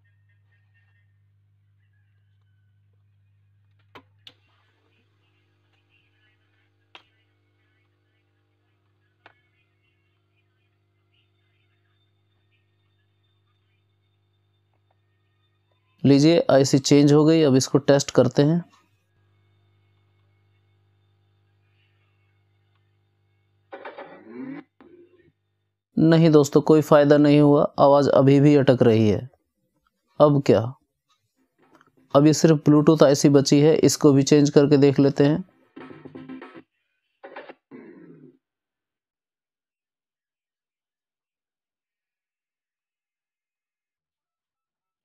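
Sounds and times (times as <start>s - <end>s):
choppy voice-like speaker sound: 0.0s - 2.5s, 3.1s - 13.9s, 15.9s - 18.8s, 23.8s - 25.3s, 26.0s - 29.4s, 30.2s - 30.8s, 32.1s - 38.4s
low mains hum: 0.0s - 29.4s.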